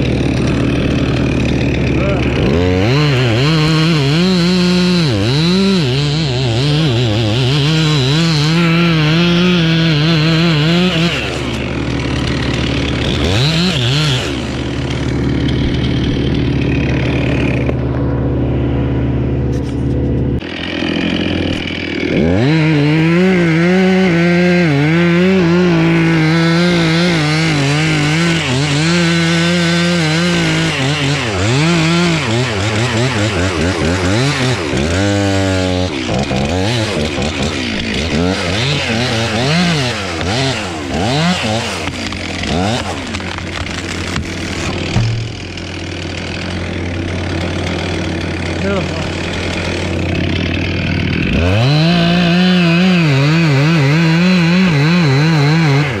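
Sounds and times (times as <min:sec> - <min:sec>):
chainsaw cutting wood: 0:00.0 - 0:56.0.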